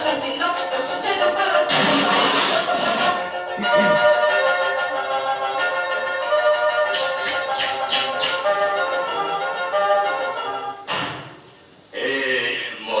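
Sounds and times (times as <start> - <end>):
cartoon soundtrack music: 0.6 - 10.9.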